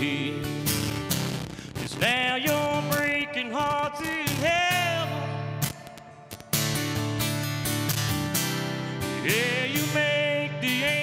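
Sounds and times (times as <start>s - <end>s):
man singing: 0.0s - 1.1s, 1.7s - 6.9s, 9.0s - 11.0s
acoustic guitars strumming: 0.0s - 11.0s.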